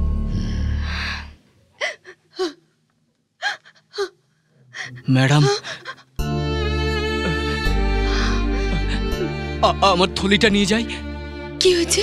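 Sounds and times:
woman sobbing: 1.8s - 2.7s, 4.8s - 6.2s, 6.8s - 9.6s
background film music: 5.3s - 12.0s.

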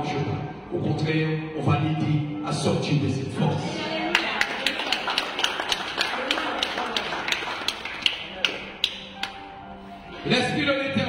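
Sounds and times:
soft background music: 0.0s - 11.0s
sharp rhythmic taps: 7.6s - 9.5s.

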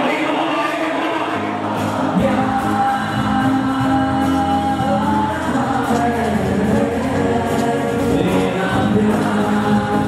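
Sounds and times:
crowd singing along: 0.0s - 10.0s
acoustic guitar: 1.3s - 10.0s.

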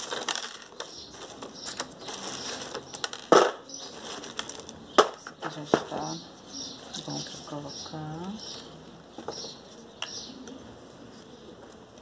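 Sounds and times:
bark pieces rustling and clattering: 0.0s - 6.2s.

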